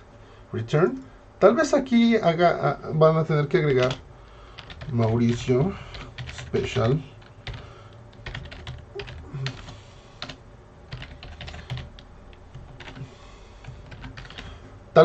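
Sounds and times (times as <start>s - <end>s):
computer keyboard typing: 3.7s - 14.6s.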